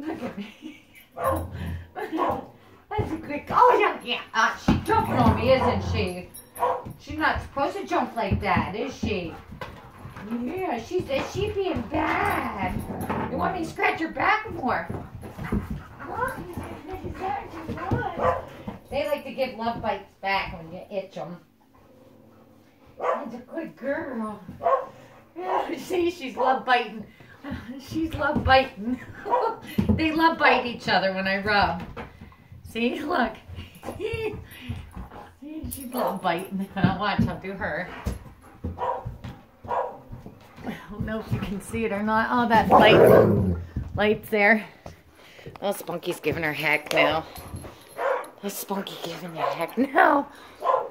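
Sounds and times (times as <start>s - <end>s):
dog barking: 1.2s - 1.5s, 2.2s - 2.5s, 6.6s - 6.9s, 18.2s - 18.5s, 23.0s - 23.3s, 24.6s - 24.9s, 38.8s - 40.0s, 48.0s - 48.4s, 49.4s - 49.7s, 50.6s - 50.9s
dog whining and grumbling: 4.9s - 6.3s, 42.7s - 43.6s.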